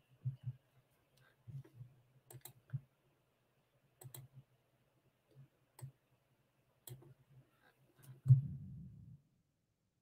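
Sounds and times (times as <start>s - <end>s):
faint computer clicking: 1.1s - 2.9s, 4.0s - 4.4s, 5.3s - 6.0s, 6.8s - 7.2s.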